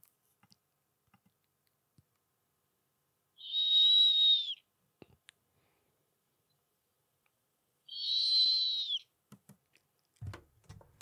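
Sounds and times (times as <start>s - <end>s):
high steady animal whistle: 3.4s - 4.7s, 7.9s - 9.1s.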